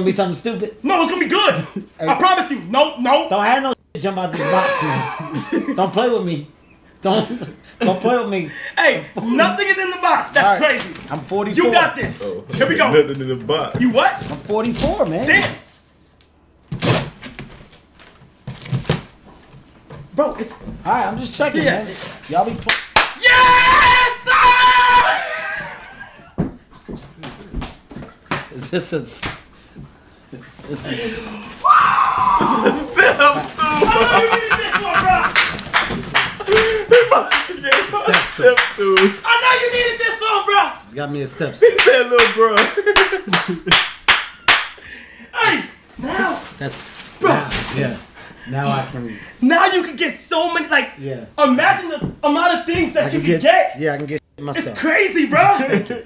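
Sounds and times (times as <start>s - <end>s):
sharp hand claps: 22.7s - 23.2s, 35.2s - 36.7s, 37.3s - 39.2s, 41.8s - 44.8s
person speaking: 30.3s - 43.6s
packing paper crinkling: 31.4s - 36.5s.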